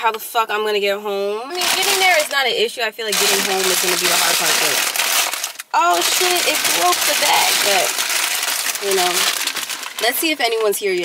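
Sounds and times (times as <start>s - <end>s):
plastic bag crinkling: 1.5s - 2.5s, 3.1s - 11.0s.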